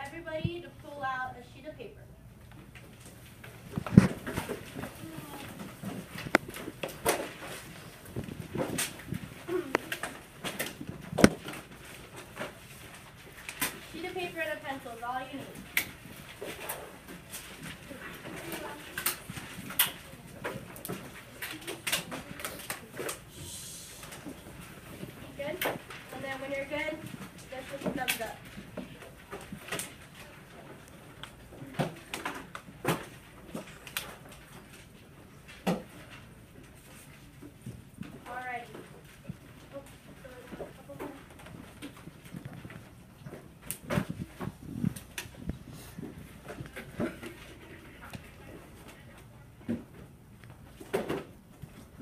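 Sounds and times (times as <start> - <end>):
paper handling: 2.5 - 52.0.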